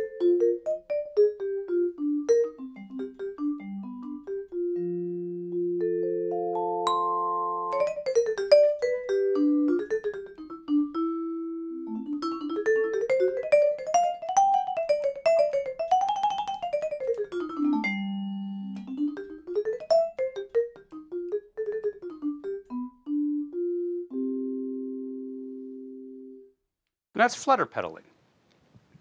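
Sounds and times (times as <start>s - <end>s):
vibraphone melody: 0.0s - 26.4s.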